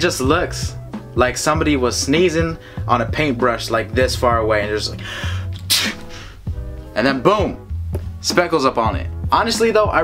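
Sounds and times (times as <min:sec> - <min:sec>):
man imitating a sneeze: 0:05.5 - 0:06.3.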